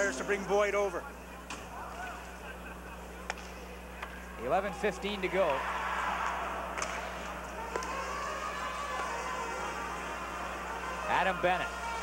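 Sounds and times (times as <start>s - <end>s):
electrical hum: 0.0s - 12.0s
hockey stick hitting puck: 6.8s - 8.0s.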